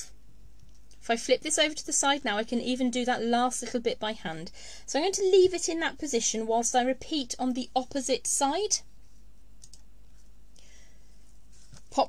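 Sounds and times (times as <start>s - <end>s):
soft hiss: 8.5s - 12.0s
faint small clicks: 9.6s - 9.9s.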